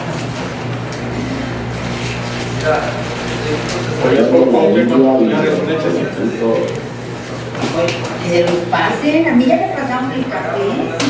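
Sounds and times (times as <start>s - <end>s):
indistinct conversation: 1.4s - 11.0s.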